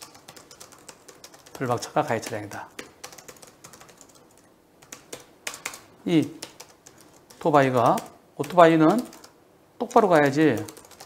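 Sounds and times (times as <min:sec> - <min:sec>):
computer keyboard typing: 0:00.0 - 0:11.0.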